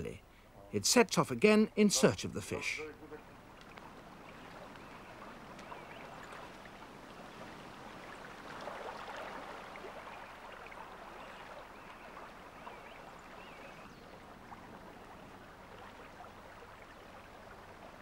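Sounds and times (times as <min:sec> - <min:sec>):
water splashing: 0:02.6 - 0:18.0.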